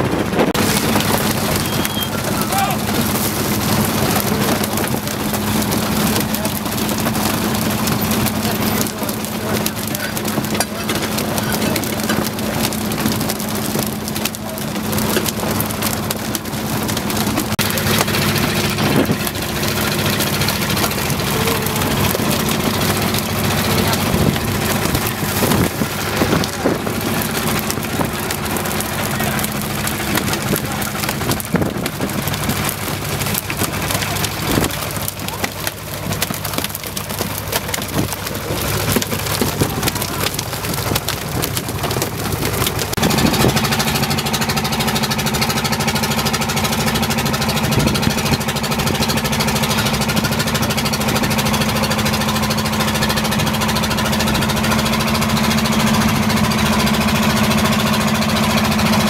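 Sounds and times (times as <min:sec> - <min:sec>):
engine hum: 0:00.0 - 0:59.0
fish flapping on wet deck: 0:00.0 - 0:59.0.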